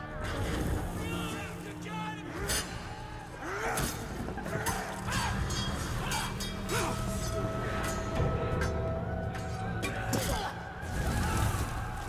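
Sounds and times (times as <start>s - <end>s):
film score music: 0.0s - 12.0s.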